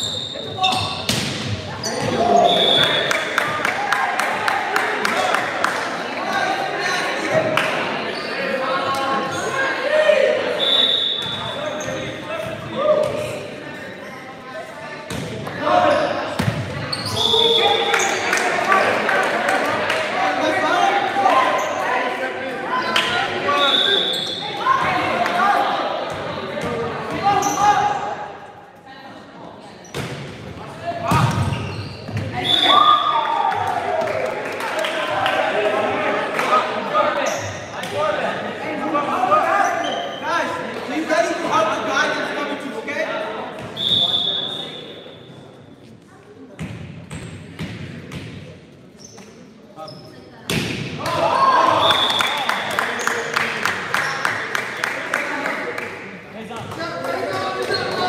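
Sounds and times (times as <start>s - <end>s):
echoing voices in gym: 0.0s - 58.0s.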